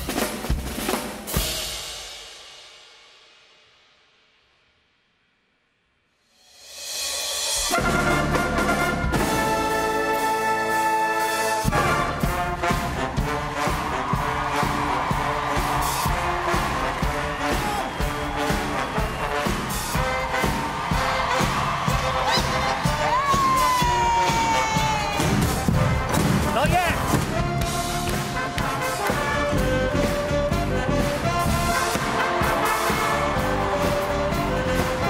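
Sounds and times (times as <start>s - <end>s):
rapid drum strokes: 0.0s - 3.4s, 11.5s - 35.0s
brass band playing a march: 7.6s - 35.0s.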